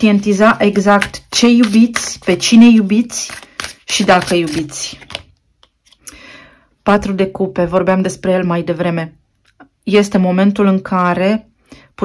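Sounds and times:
woman speaking: 0:00.0 - 0:05.1, 0:06.8 - 0:09.2, 0:09.8 - 0:11.5
cards clicking and tapping: 0:00.0 - 0:06.0
soft rustle of cards: 0:00.0 - 0:06.1.

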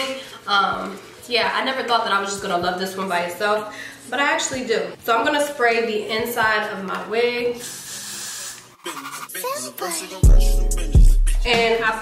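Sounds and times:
person speaking: 0:08.9 - 0:10.4.

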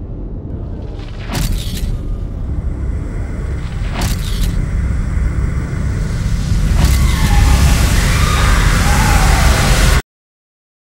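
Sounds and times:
heavy deep rumble: 0:00.0 - 0:10.0
loud hissing rush: 0:02.5 - 0:10.0.

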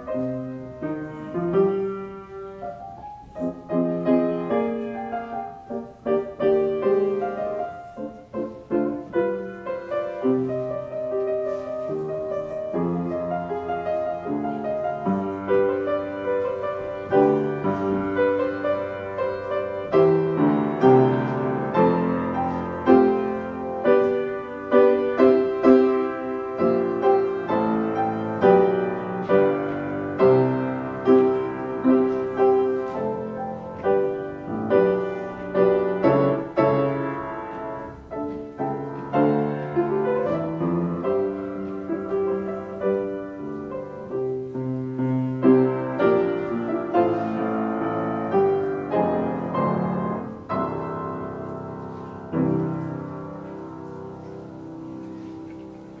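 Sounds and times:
solo piano playing: 0:00.0 - 0:56.0.

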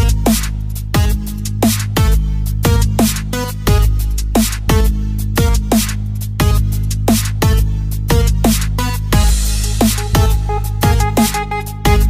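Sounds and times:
electronic dubstep music: 0:00.0 - 0:12.0.

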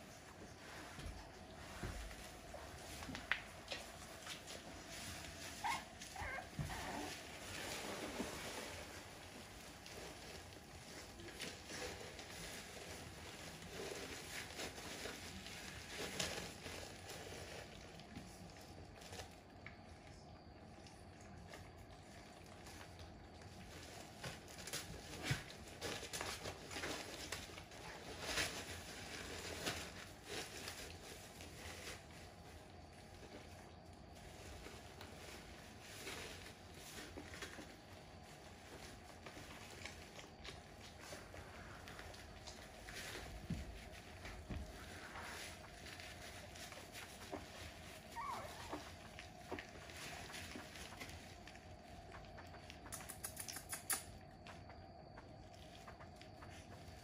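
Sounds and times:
puppies rustling in wood shavings: 0:00.0 - 0:57.0
puppy squeaks: 0:05.6 - 0:07.1, 0:48.2 - 0:48.8.

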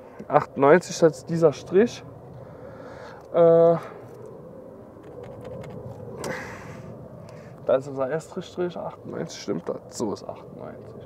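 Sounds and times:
background rumble: 0:00.2 - 0:11.0.

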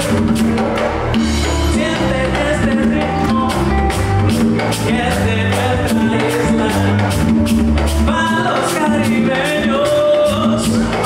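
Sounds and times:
acoustic guitar: 0:00.0 - 0:11.0
electric bass: 0:00.0 - 0:11.0
hand drums: 0:00.0 - 0:11.0
person singing: 0:01.3 - 0:11.0.

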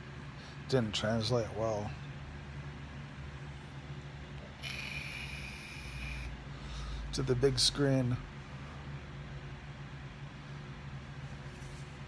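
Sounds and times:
low hum: 0:01.8 - 0:07.5
vape hiss of air: 0:04.6 - 0:06.4.

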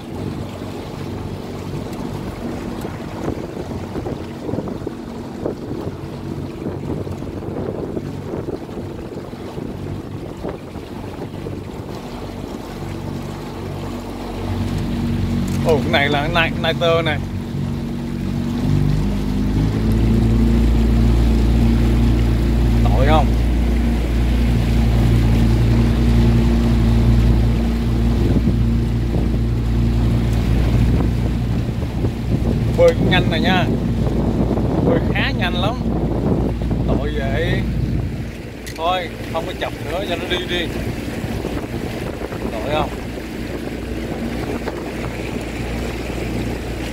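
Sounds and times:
motorboat engine running: 0:00.0 - 0:46.9
open water: 0:00.0 - 0:46.9
wind buffeting microphone: 0:00.0 - 0:46.9.

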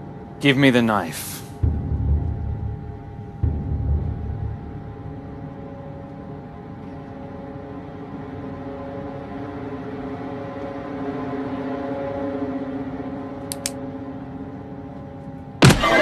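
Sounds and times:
low sustained drone chord: 0:01.6 - 0:16.0
short clicks: 0:13.5 - 0:13.8.

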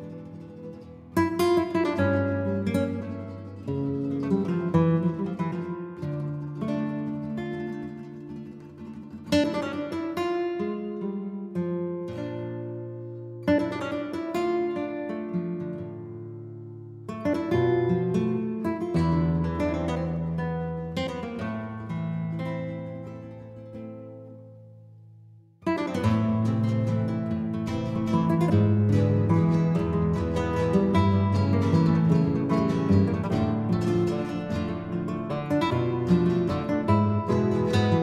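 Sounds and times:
acoustic guitar strumming: 0:00.0 - 0:38.0.

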